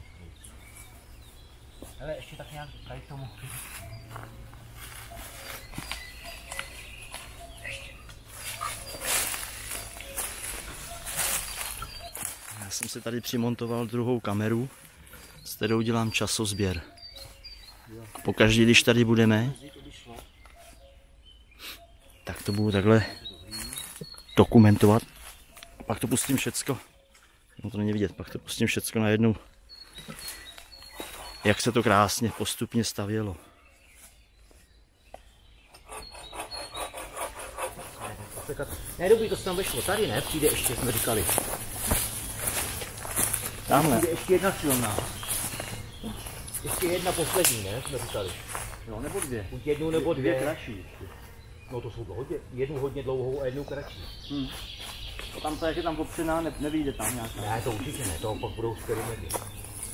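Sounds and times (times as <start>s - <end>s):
footsteps crunching dry leaves: 3.4s - 13.0s, 38.6s - 51.8s, 52.7s - 59.9s.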